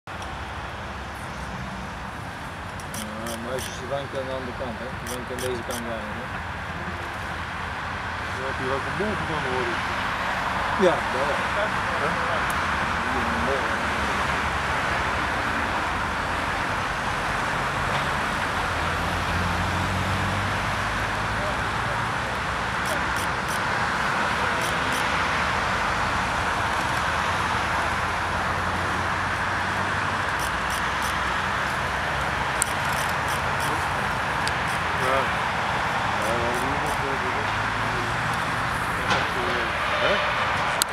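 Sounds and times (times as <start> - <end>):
distant road traffic: 0.1 - 40.9
faint voices: 2.9 - 7.3, 10.7 - 14.2, 21.0 - 25.8, 26.8 - 40.9
sharp clicks: 32.6 - 33.8.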